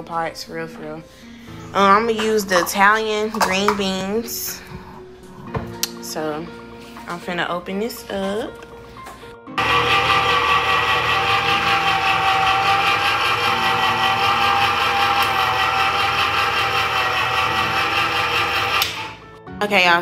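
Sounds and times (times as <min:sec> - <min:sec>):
electric can opener running: 0:09.6 - 0:19.2.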